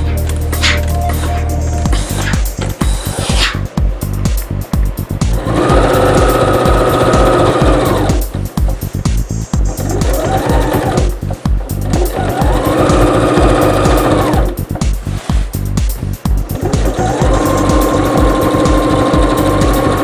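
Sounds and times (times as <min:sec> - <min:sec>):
background music with steady beat: 0:00.0 - 0:20.0
sewing machine stitching: 0:05.3 - 0:08.3, 0:09.7 - 0:11.2, 0:11.8 - 0:14.6, 0:16.5 - 0:20.0.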